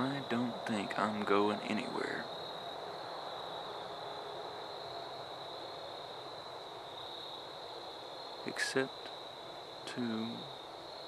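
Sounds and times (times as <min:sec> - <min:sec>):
faint background hiss: 0:00.0 - 0:11.0
insects trilling: 0:00.0 - 0:11.0.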